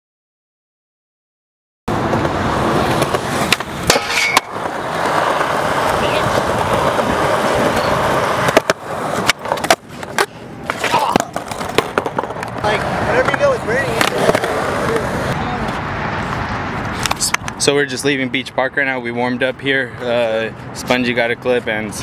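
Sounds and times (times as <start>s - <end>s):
skateboard wheels rolling on concrete: 1.9s - 22.0s
skateboard clacking on ground: 2.0s - 15.8s.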